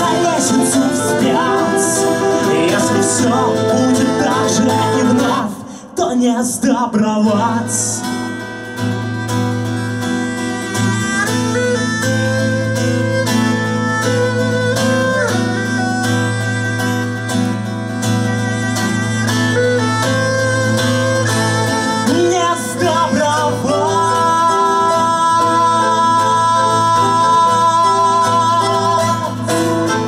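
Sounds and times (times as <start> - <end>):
violin melody: 0.0 - 5.6, 8.0 - 30.0
strummed acoustic guitars: 0.0 - 30.0.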